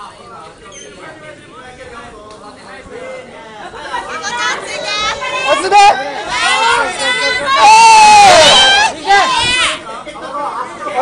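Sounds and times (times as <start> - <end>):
spectators chattering and calling out: 0.0 - 11.0.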